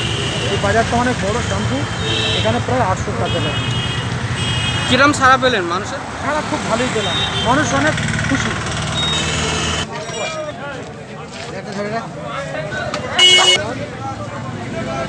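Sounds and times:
traffic engine hum: 0:00.0 - 0:09.9, 0:12.4 - 0:15.0
short high horn toots: 0:13.2 - 0:13.6.

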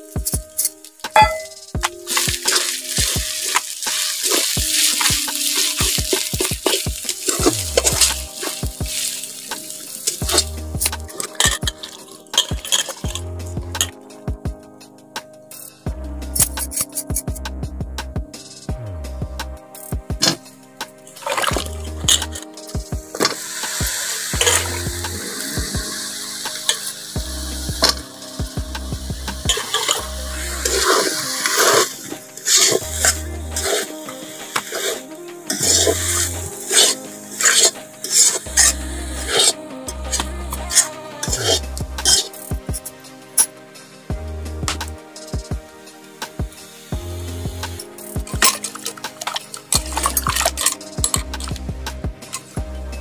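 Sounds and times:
food sizzling in hot oil: 0:01.1 - 0:10.5, 0:23.2 - 0:28.4, 0:29.5 - 0:39.5, 0:40.1 - 0:42.6
metal spatula scraping pan: 0:36.7 - 0:38.7, 0:39.3 - 0:42.4.

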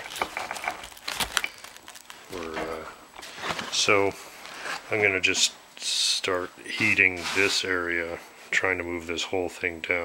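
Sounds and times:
stiff vinyl panel crackling: 0:00.0 - 0:02.6.

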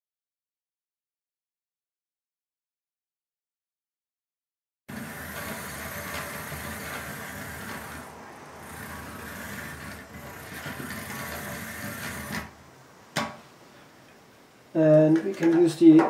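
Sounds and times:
small geared motor running: 0:04.9 - 0:12.6.

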